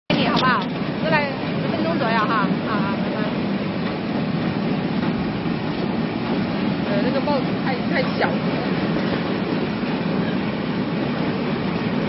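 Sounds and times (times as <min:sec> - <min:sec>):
voices talking: 0:00.1 - 0:03.4, 0:06.8 - 0:08.9.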